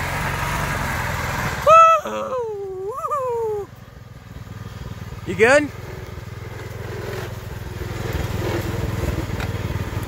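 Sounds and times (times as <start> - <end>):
lawn tractor engine running: 0.0 - 10.0
person shouting woo: 1.6 - 3.7.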